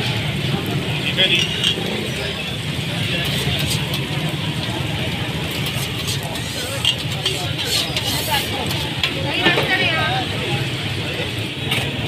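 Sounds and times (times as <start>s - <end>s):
patties sizzling on a griddle: 0.0s - 11.4s
background chatter: 0.0s - 12.0s
low rumble of traffic: 0.0s - 12.0s.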